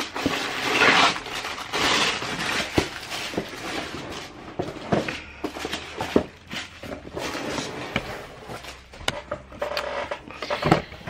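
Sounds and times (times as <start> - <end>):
box contents rustling: 0.0 - 11.0.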